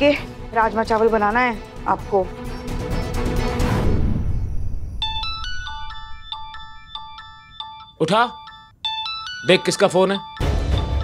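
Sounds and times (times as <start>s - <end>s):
melodic phone ringtone: 5.0s - 11.0s.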